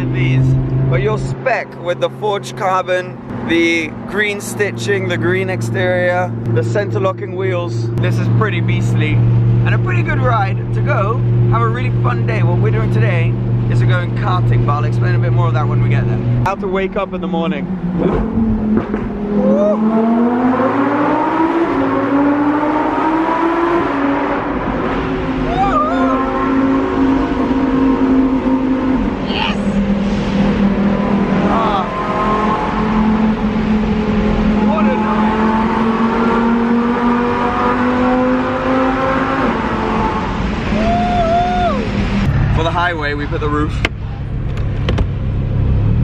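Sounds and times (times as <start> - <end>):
people whooping and laughing: 19.4 - 19.8, 25.5 - 26.3, 40.7 - 41.9.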